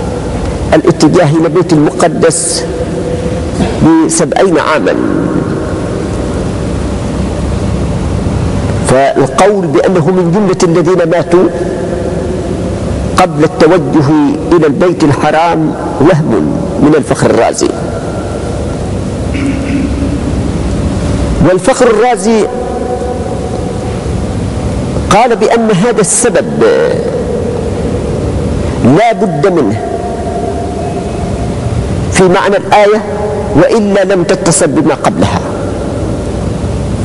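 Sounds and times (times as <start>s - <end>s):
background hiss and rumble: 0.0s - 37.0s
man talking: 0.7s - 2.8s, 3.6s - 5.6s, 8.8s - 12.0s, 13.1s - 18.0s, 21.4s - 23.2s, 25.0s - 27.4s, 28.7s - 31.4s, 32.1s - 35.7s.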